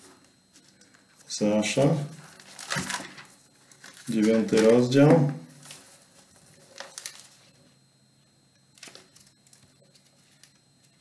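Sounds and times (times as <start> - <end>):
thin pages rustling: 2.2 - 7.5.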